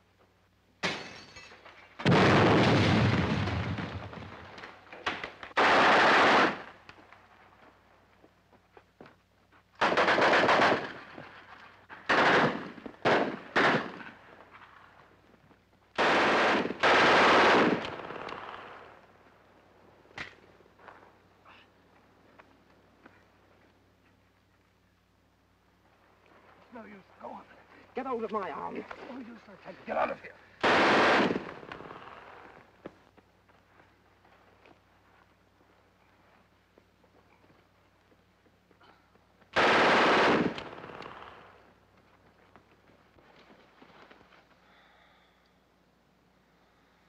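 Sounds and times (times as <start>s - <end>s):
automatic gunfire bursts: 5.6s - 6.7s, 9.8s - 11.0s, 12.1s - 14.1s, 16.0s - 18.2s, 30.6s - 32.0s, 39.6s - 41.4s.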